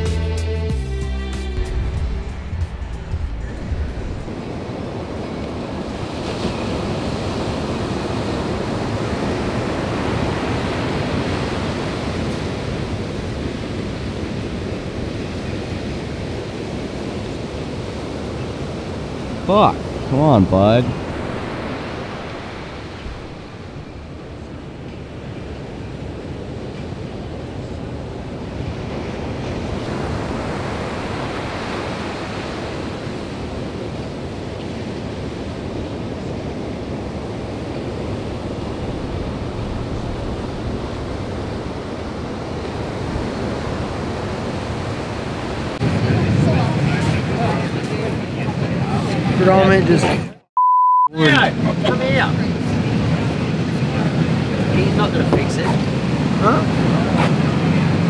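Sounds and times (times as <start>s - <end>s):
ocean waves breaking: 1.3s - 50.4s, 51.2s - 58.0s.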